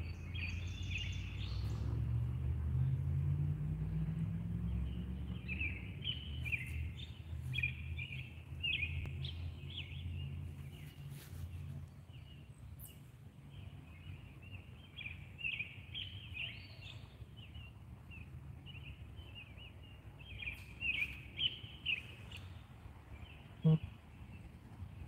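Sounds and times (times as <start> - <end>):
songbirds singing: 0.0 - 25.0.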